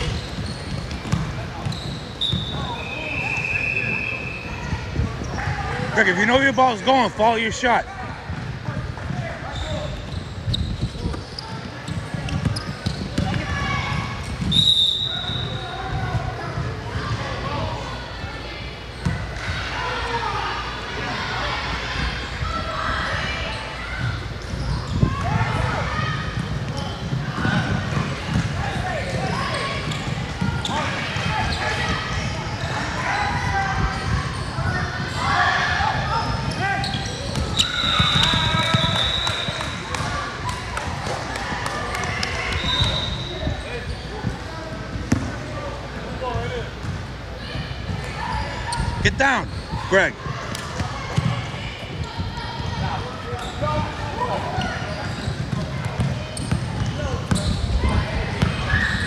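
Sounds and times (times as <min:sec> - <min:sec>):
referee's whistle: 0:01.7 - 0:04.5, 0:14.5 - 0:15.6, 0:36.5 - 0:39.8, 0:42.5 - 0:43.6.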